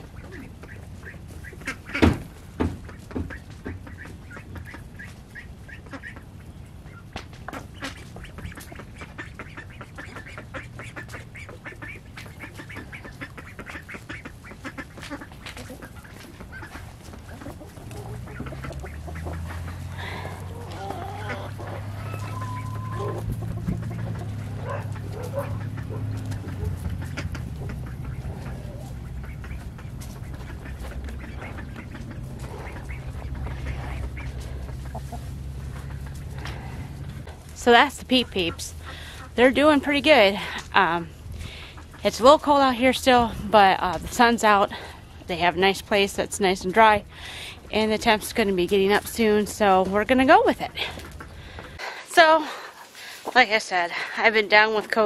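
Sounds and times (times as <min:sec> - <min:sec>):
chickens calling: 0:00.0 - 0:55.0
ducks quacking: 0:00.0 - 0:55.0
low steady hum: 0:03.9 - 0:52.7.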